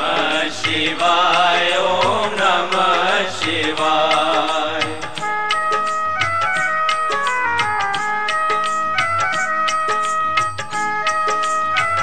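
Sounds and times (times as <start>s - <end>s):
steady drum beat: 0.0s - 12.0s
wavering devotional melody: 0.0s - 12.0s.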